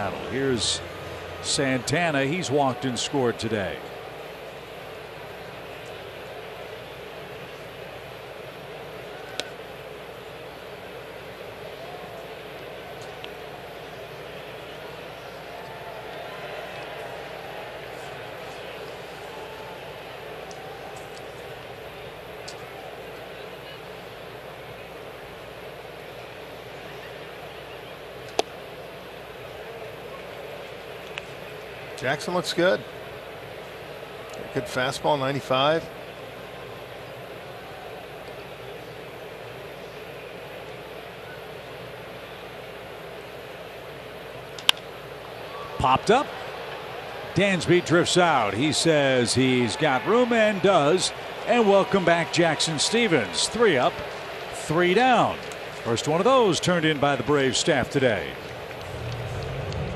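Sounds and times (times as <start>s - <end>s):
crowd murmur: 0.0s - 31.9s, 56.6s - 59.9s.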